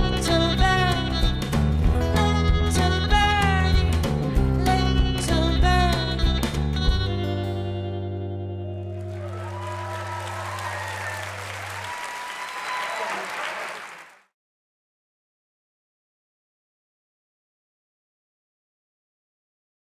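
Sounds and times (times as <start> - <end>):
live rock band playing: 0.0 - 11.8
guitar chord ringing: 7.0 - 9.2
audience cheering: 8.7 - 14.3
audience applause: 8.8 - 14.3.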